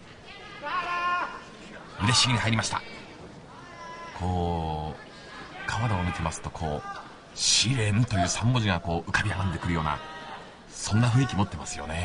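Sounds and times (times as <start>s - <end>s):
arena crowd murmur: 0.0s - 12.0s.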